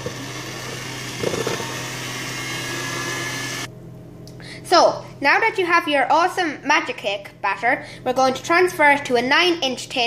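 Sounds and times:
electric hand mixer running: 0.0 - 3.7.

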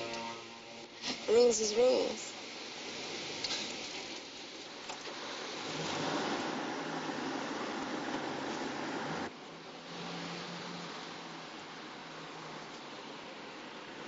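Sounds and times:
low engine hum: 0.0 - 14.0
traffic hiss: 0.0 - 14.0.

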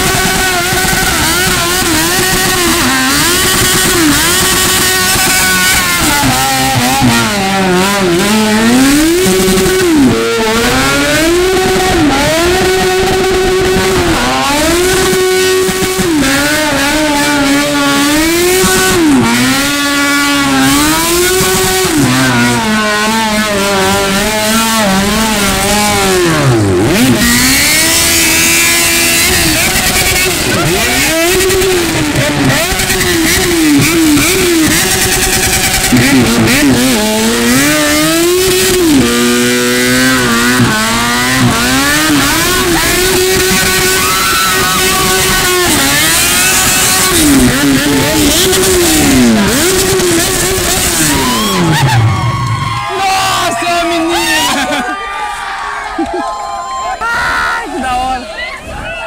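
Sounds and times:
motorcycle engine revving: 0.0 - 54.8.

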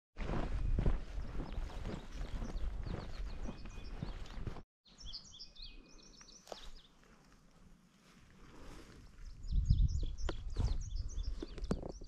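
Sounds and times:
footsteps on grassy trail: 0.2 - 4.6, 6.3 - 9.5
wind rumble on microphone: 0.3 - 4.6, 8.6 - 12.0
songbirds chirping: 0.5 - 12.0.

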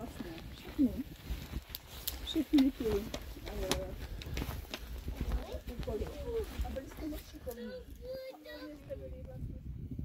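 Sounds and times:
voices talking softly: 0.0 - 10.0.

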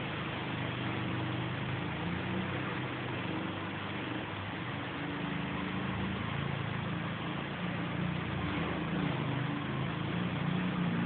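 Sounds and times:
small engine idling: 0.0 - 11.0.

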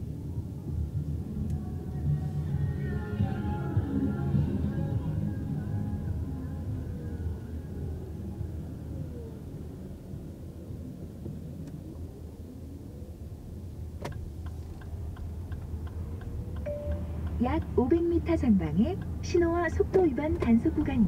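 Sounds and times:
faint gliding whine: 0.0 - 14.0
road and drivetrain rumble: 0.0 - 21.0
turn signal ticking: 14.0 - 21.0.

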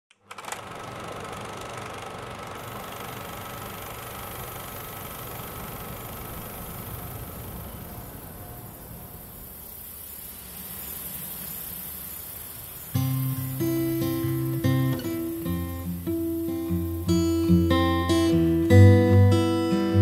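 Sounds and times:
vehicle engine rumbling: 1.9 - 18.9.

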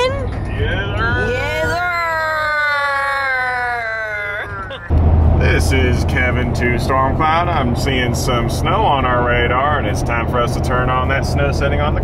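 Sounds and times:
car cabin road noise: 0.0 - 12.0.

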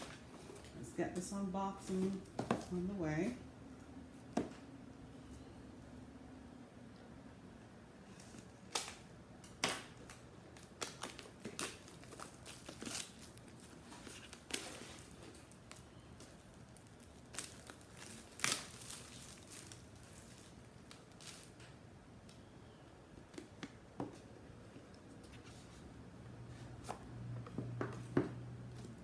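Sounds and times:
packaging crackles: 8.3 - 21.7
packaging rustling and crinkling: 9.9 - 21.7.

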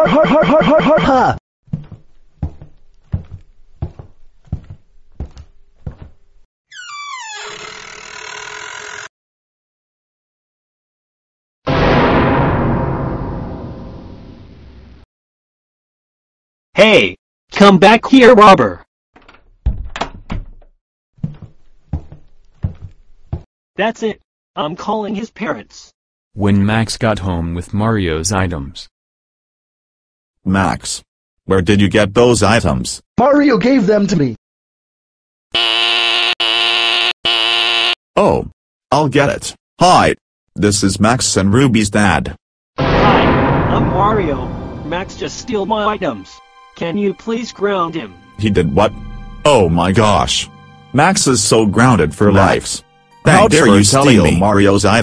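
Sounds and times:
cartoon door creaking open: 6.7 - 9.1
wooden door shutting with thud: 19.2 - 20.7.

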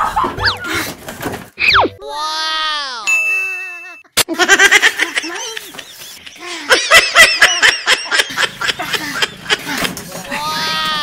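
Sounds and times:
bell-like ding: 3.1 - 4.1
person laughing excitedly: 4.2 - 10.7.

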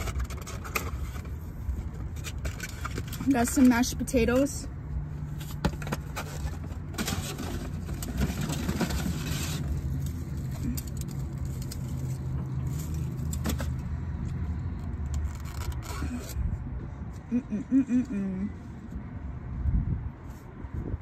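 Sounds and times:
plastic containers and utensils clattering: 0.0 - 4.0, 5.4 - 13.8.

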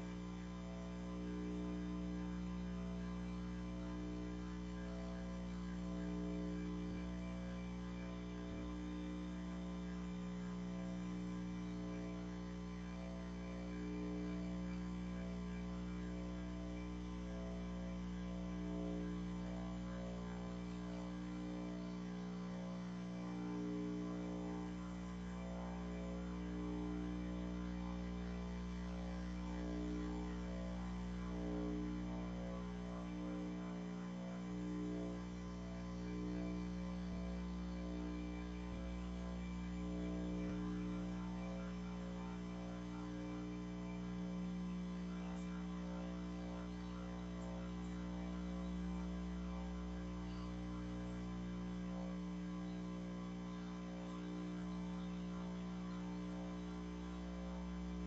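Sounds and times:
low hum of held tones: 0.0 - 58.0.

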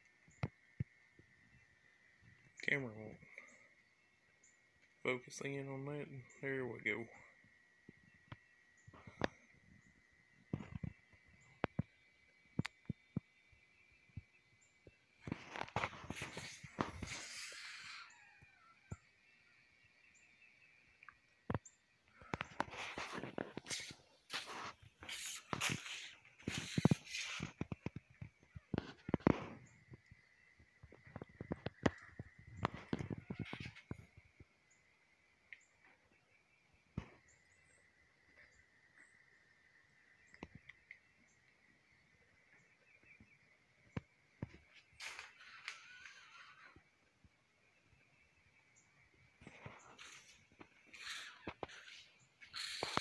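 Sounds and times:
faint high chirps: 0.1 - 22.7.

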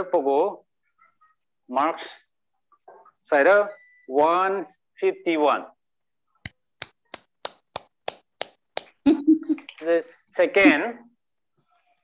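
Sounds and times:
person clapping slowly: 6.4 - 9.0.

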